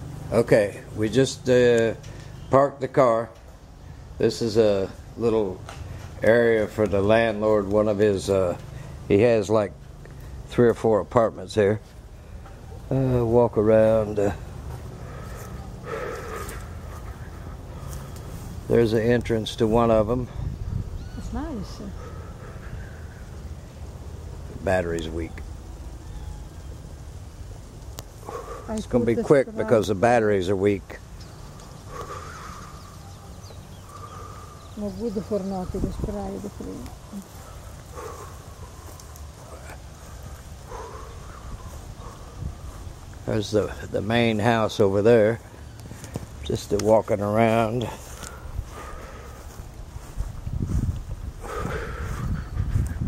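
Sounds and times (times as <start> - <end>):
faint distant calls: 0.0 - 53.0
handheld camera rumble: 31.0 - 53.0.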